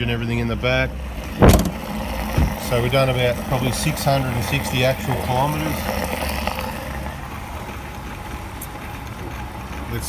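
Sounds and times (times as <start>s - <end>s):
fuel pump humming: 0.0s - 10.0s
fuel rushing through nozzle: 1.0s - 7.6s.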